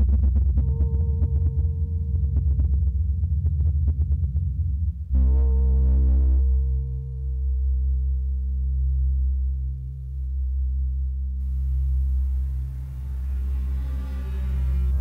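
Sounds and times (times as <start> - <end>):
wavering sine tone: 0.0 - 15.0
synthesizer drone: 5.1 - 15.0
soft hiss: 11.3 - 15.0.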